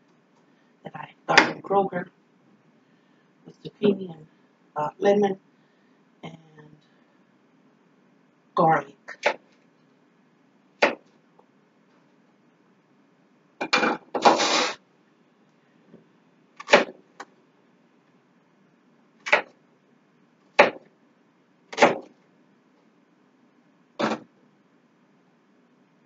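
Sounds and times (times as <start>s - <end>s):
knife chopping on cutting board: 20.6s - 20.8s, 21.8s - 22.1s.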